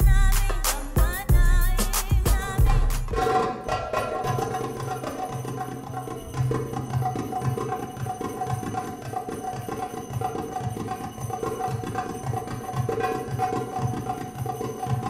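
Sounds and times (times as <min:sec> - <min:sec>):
goblet drum fast rhythm: 0:00.0 - 0:15.0.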